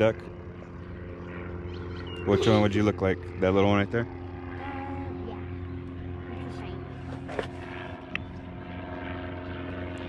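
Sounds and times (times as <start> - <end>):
distant engine drone: 0.0 - 10.0.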